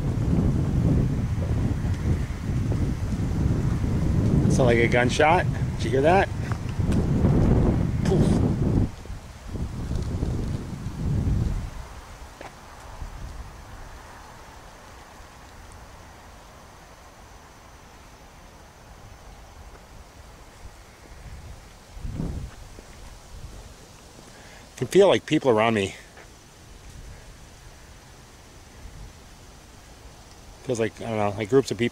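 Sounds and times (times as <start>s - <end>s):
wind buffeting microphone: 0.0s - 17.5s, 18.9s - 25.0s, 26.6s - 31.9s
faint outdoor hush: 0.0s - 31.9s.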